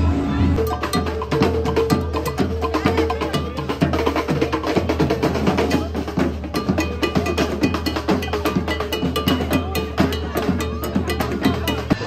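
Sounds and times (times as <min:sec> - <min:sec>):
parade drums beating: 0:00.6 - 0:12.0.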